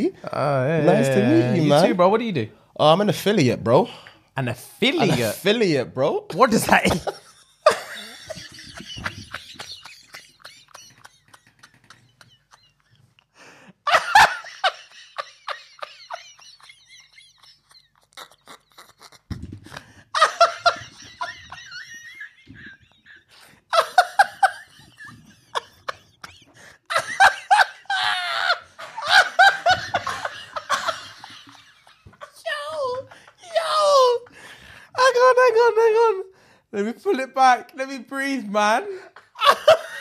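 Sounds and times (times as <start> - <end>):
men laughing: 0.8 - 1.9, 4.9 - 5.4, 6.6 - 34.3, 38.7 - 40.0.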